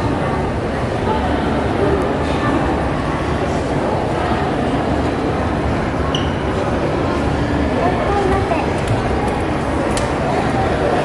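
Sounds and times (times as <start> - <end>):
busy hall noise: 0.0 - 11.0
faint voices: 0.0 - 11.0.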